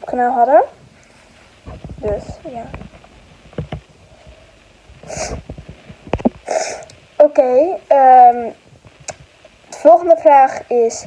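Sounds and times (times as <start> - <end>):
breathy puffs into microphone: 4.1 - 6.9.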